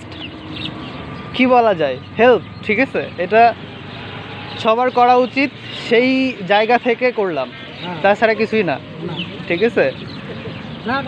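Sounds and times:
road noise rumble: 0.0 - 11.0
man talking: 1.4 - 3.6, 4.6 - 10.0, 10.8 - 11.0.

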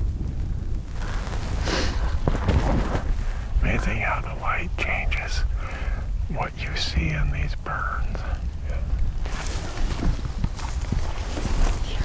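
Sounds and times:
wind rumble on microphone: 0.0 - 12.0
men whispering: 3.4 - 9.4.

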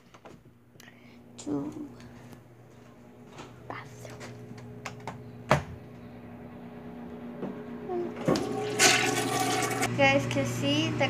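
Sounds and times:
steady low hum: 0.0 - 8.6.

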